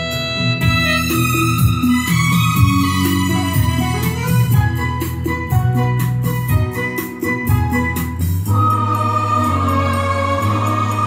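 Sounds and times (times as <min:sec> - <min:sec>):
electronic keyboard playing carol: 0:00.0 - 0:11.0
held choir-like chord: 0:08.5 - 0:11.0.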